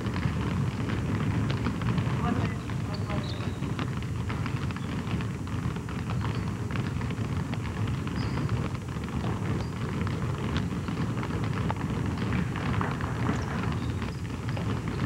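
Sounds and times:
basketballs dribbled on hardwood floor: 0.0s - 15.0s.

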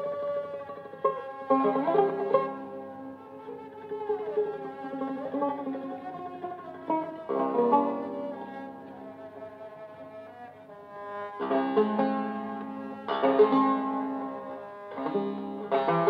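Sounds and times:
long-necked lute playing: 0.0s - 16.0s.

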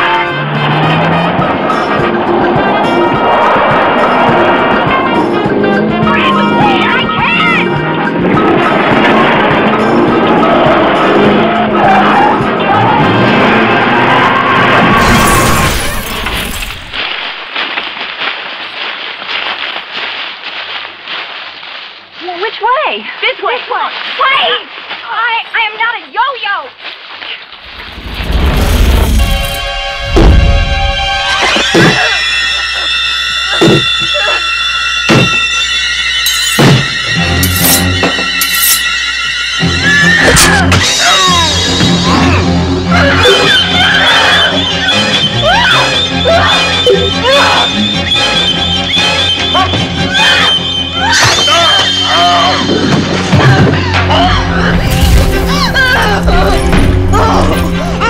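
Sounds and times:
film music: 0.0s - 16.0s, 29.0s - 58.0s.

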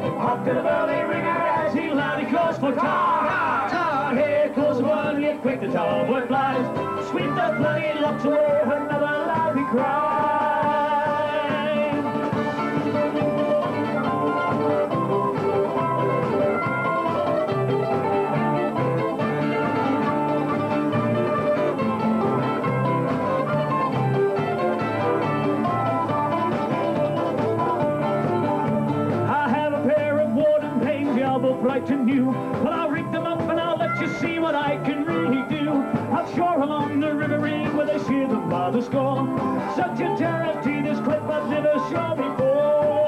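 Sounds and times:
fiddle melody: 0.0s - 43.0s
plucked strings: 0.0s - 43.0s
strummed acoustic guitar: 0.0s - 43.0s.

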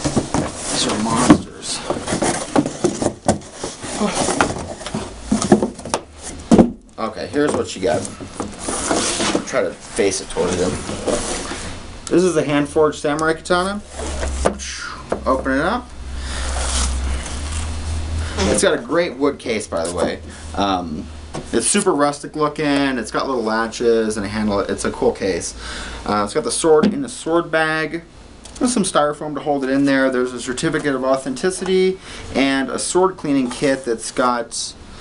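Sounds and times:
cardboard scraping and rustling: 0.0s - 6.8s, 7.4s - 11.7s
wood knocking on box: 1.2s - 3.5s, 4.3s - 6.8s.

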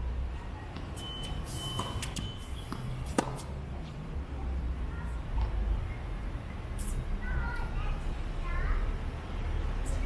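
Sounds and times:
racket hitting tennis ball: 0.7s - 3.5s.

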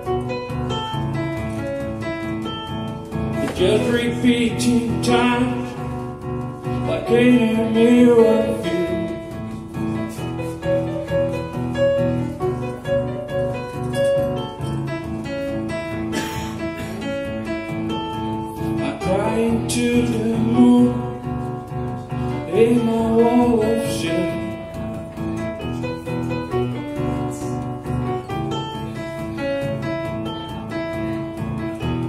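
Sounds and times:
keyboard playing repeated chords: 0.0s - 32.0s
man singing: 3.4s - 9.4s, 18.8s - 21.5s, 22.2s - 24.8s.

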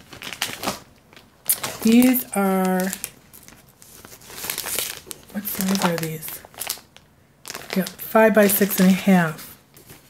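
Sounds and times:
paper and plastic rustling: 0.0s - 10.0s.

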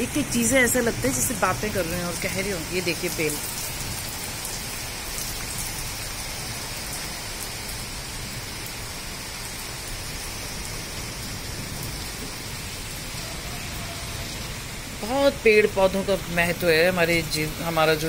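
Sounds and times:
heavy rain on pavement: 0.0s - 18.0s.

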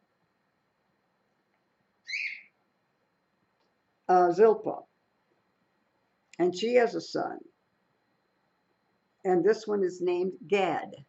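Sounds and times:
parrot call: 2.0s - 2.6s.

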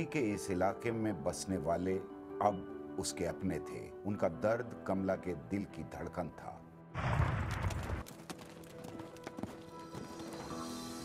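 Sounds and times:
soundtrack music with held notes: 0.0s - 6.9s, 8.8s - 11.0s.

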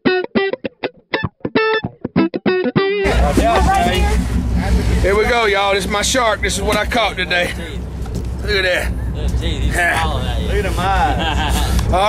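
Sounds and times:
boat engine rumble: 3.0s - 12.0s
voices talking: 3.0s - 12.0s.

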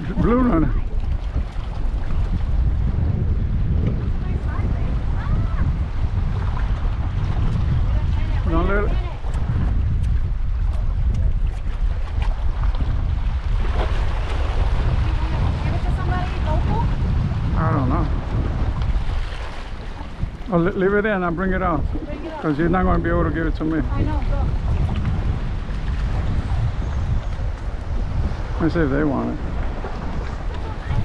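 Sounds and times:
waves washing against rocks: 0.0s - 31.0s
wind buffeting microphone: 0.0s - 31.0s.

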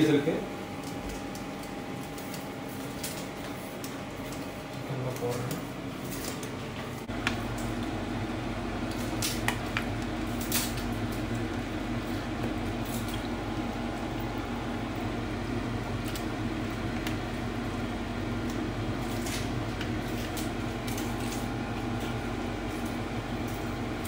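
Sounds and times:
kitchen hum and hiss: 0.0s - 24.0s.

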